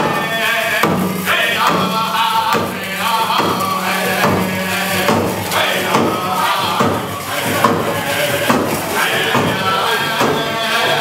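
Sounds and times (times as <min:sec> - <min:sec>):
steady low hum: 0:00.0 - 0:10.5
drum beat: 0:00.0 - 0:11.0
voices chanting: 0:00.0 - 0:11.0.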